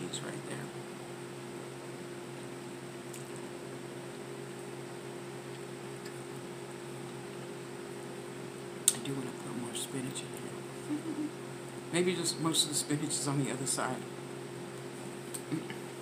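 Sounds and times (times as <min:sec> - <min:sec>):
appliance electrical hum: 0:00.0 - 0:16.0.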